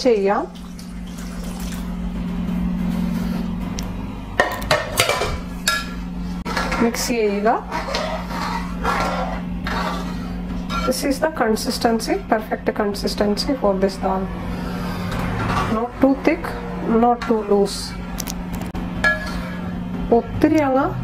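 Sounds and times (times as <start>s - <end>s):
steady low hum: 0.0s - 21.0s
ladle scraping through thick food: 6.2s - 11.0s.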